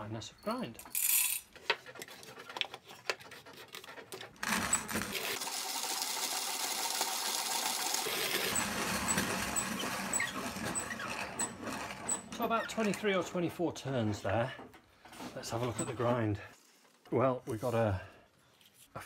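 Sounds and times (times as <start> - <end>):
coffee grinder grinding: 4.4 - 12.4.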